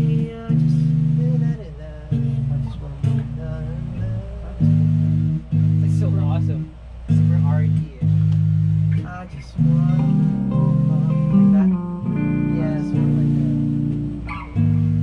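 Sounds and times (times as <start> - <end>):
electric bass: 0.0 - 15.0
electric guitar: 0.0 - 15.0.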